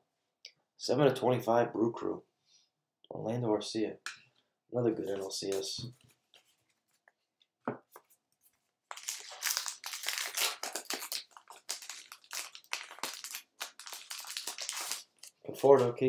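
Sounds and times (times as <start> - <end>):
wrapper tearing and crinkling: 8.9 - 15.5.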